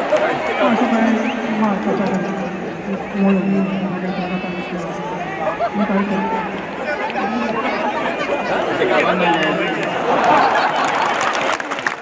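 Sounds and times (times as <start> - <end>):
spectators chattering: 0.0 - 12.0
man on public address: 6.2 - 9.8.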